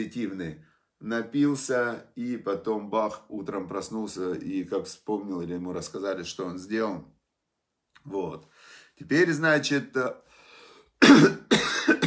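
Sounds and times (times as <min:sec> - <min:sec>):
man coughing: 0:11.0 - 0:12.0.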